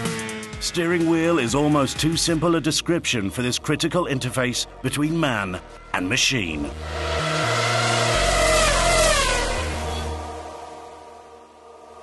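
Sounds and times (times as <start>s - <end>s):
racing car engine high-revving: 0.0s - 2.8s, 6.7s - 10.8s.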